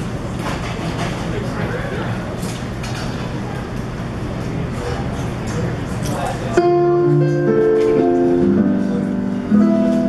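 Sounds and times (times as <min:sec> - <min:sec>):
jazz combo playing slow ballad: 0:06.5 - 0:10.0.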